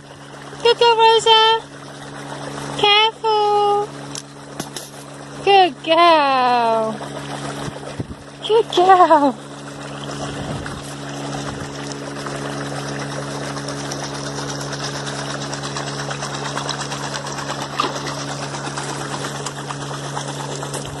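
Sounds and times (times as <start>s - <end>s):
motor hum: 0.0s - 21.0s
rushing water: 0.0s - 21.0s.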